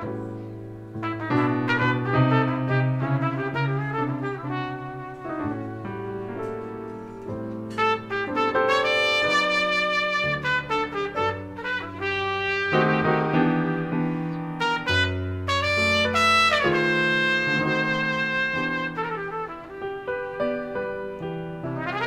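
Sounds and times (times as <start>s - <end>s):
bass: 0.0s - 22.0s
piano: 0.0s - 22.0s
trumpet playing long notes: 1.0s - 6.8s, 7.7s - 22.0s.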